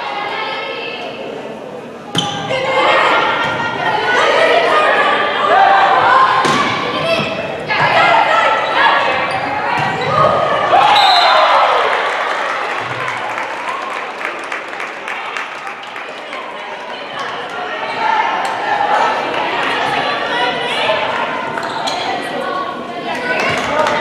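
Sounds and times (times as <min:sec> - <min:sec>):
voices: 0:00.0 - 0:24.0
players shouting: 0:02.2 - 0:14.2
crowd cheering: 0:02.5 - 0:21.9
volleyball hits: 0:06.3 - 0:08.1.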